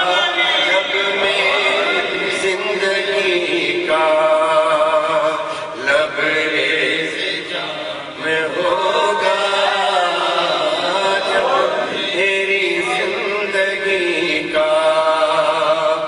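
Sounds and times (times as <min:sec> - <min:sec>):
men chanting melodic recitation: 0:00.0 - 0:16.0.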